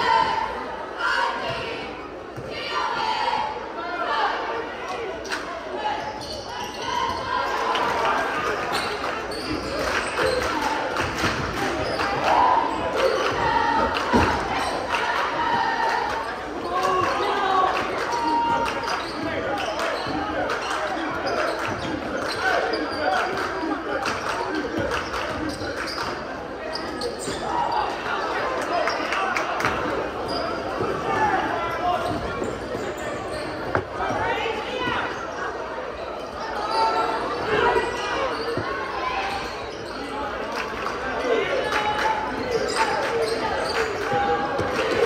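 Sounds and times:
spectators chattering: 0.0 - 45.0.

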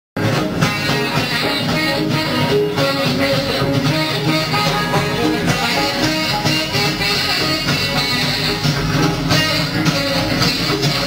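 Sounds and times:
live blues-rock band playing: 0.2 - 11.0.

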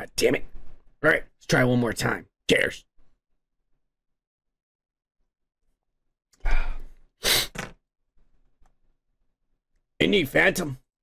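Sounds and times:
man sighing: 6.4 - 7.6.

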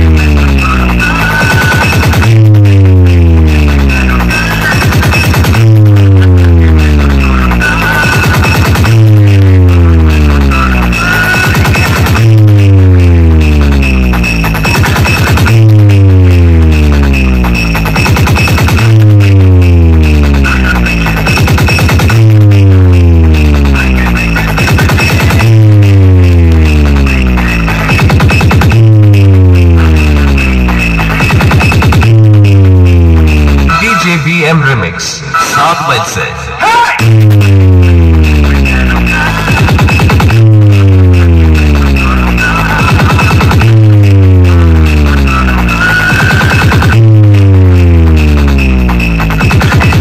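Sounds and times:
deep bass tones gliding downward: 0.0 - 1.1, 2.0 - 7.8, 8.6 - 14.7, 15.4 - 18.0, 18.6 - 21.3, 22.0 - 24.6, 25.2 - 33.8, 37.0 - 39.3, 40.0 - 42.6, 43.4 - 45.8, 46.9 - 49.4
loud electronic dance music: 0.0 - 50.0.

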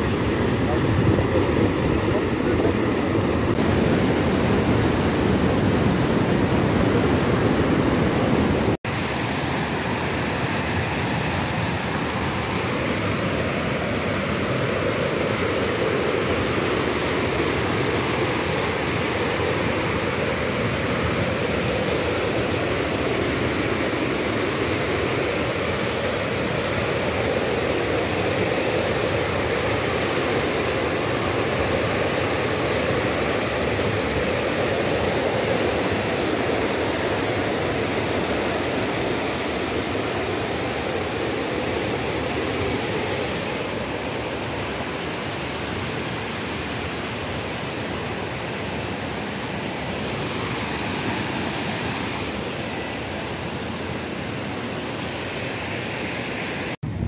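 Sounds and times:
water rushing against concrete: 0.0 - 56.8.

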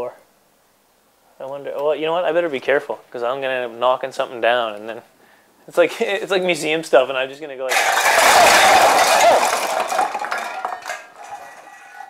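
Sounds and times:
tin cans clattering on wooden floor: 7.7 - 12.0.

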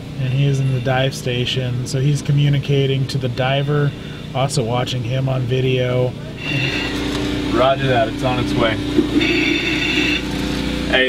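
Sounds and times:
generator and pump engines humming: 0.0 - 11.0
high steady tone: 6.2 - 11.0.

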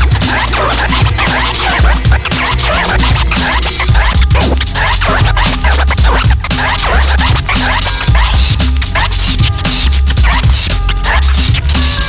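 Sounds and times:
deep bass: 0.0 - 12.0
hip hop drum break: 0.0 - 12.0
turntable scratching: 0.0 - 12.0.

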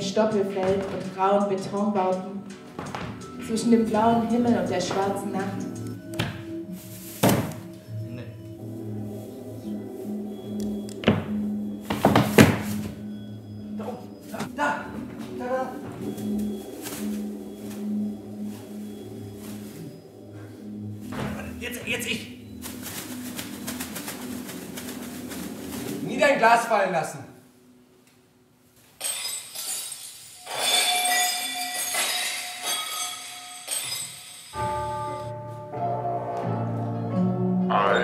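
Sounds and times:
background music with low notes: 0.0 - 28.6, 34.5 - 38.0
plastic bags swishing: 6.5 - 10.4, 13.9 - 26.4
thunks: 11.0 - 13.1, 21.1 - 22.0.

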